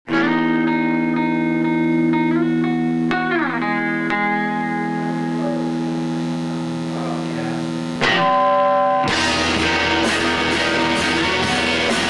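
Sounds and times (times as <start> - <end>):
electric guitar chords: 0.1 - 12.0.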